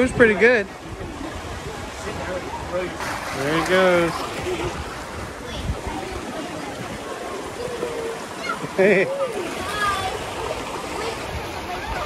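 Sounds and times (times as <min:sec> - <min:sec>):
water rushing down a slide: 0:00.9 - 0:12.0.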